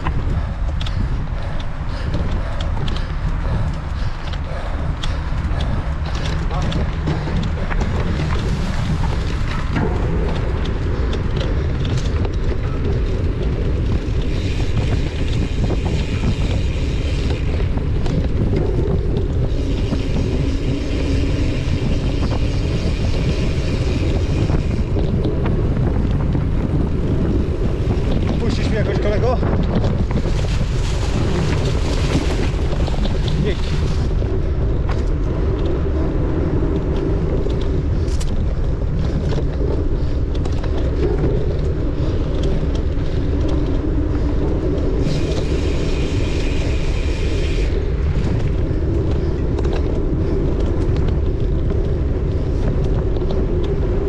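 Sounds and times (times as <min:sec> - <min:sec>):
mountain bike rumbling and rattling: 0:00.0 - 0:54.0
wind buffeting microphone: 0:00.0 - 0:54.0.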